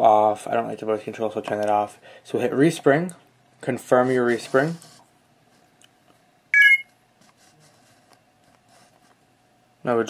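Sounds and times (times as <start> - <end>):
faint steady hum: 0.0 - 10.0
short high electronic beep: 6.6 - 6.9.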